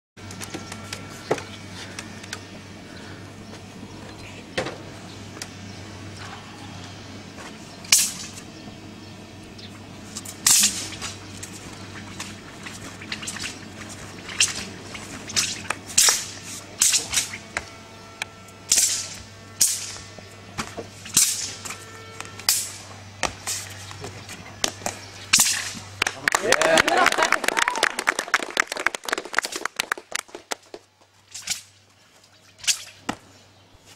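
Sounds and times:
low steady hum: 0.2s - 33.9s.

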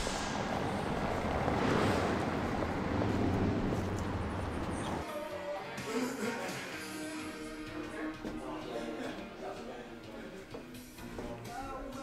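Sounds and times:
street traffic rumble: 0.0s - 5.0s.

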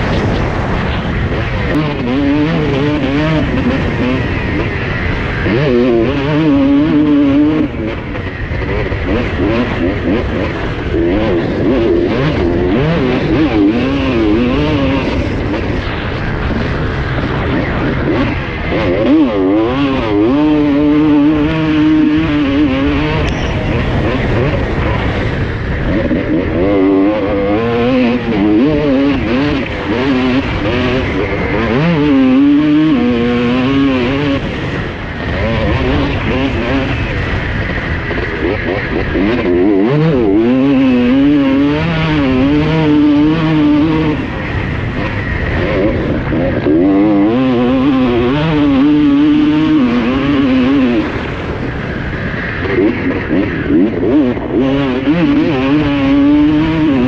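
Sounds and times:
motocross engine revving: 0.0s - 57.0s.

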